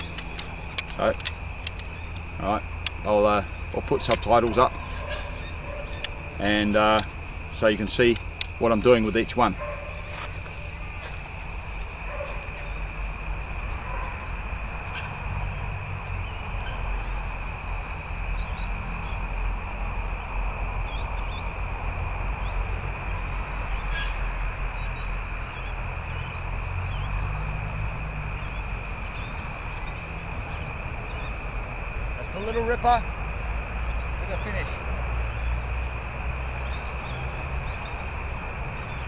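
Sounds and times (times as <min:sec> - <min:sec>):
wind rumbling on microphone: 0:00.0 - 0:39.0
faint bird chirps: 0:04.7 - 0:06.5.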